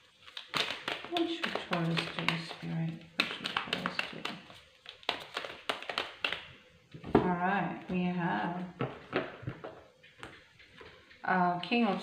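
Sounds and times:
cards being shuffled: 0:00.1 - 0:06.6.

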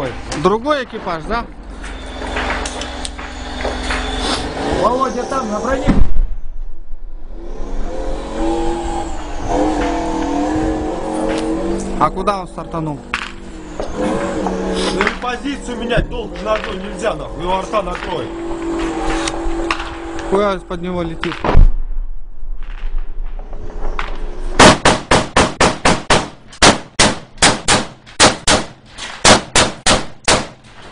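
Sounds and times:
heavy vehicle engine whining: 0:00.0 - 0:21.4
loud blast: 0:02.1 - 0:07.3, 0:21.2 - 0:23.9, 0:24.5 - 0:30.6
rapid gunfire: 0:24.6 - 0:30.6.

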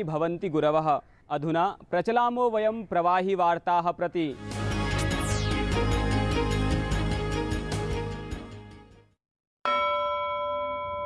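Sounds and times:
bell-like chime: 0:09.7 - 0:11.0.

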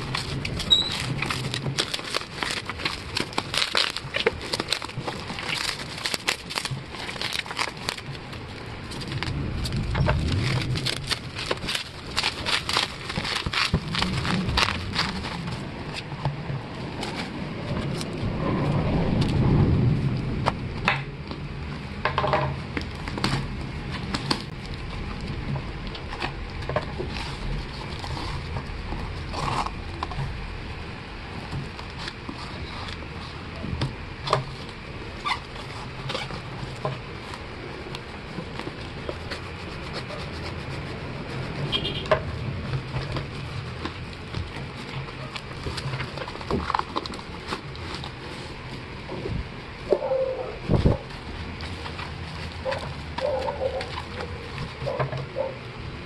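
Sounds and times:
packing tape ripping: 0:00.0 - 0:16.1
cardboard clicks and rustles: 0:00.0 - 0:18.2, 0:20.4 - 0:56.0
bubble wrap crinkling: 0:00.0 - 0:21.8, 0:22.6 - 0:55.6
low animal calls: 0:49.8 - 0:51.1.

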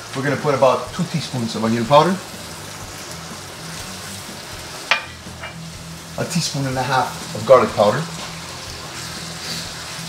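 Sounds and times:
meat sizzling in a pan: 0:00.0 - 0:10.0.

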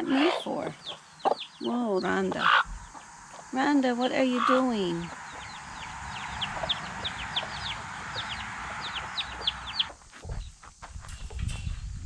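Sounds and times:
chicks peeping: 0:00.0 - 0:11.9
low rumbling: 0:04.6 - 0:12.0.

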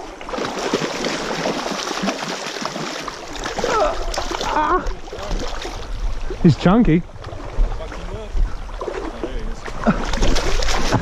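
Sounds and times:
fish thrashing and splashing: 0:00.0 - 0:06.0, 0:08.8 - 0:11.0.

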